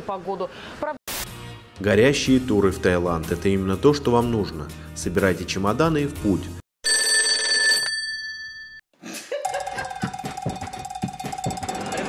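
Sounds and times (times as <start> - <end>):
phone ringtone: 6.8 - 8.8
drum beat: 9.4 - 12.0.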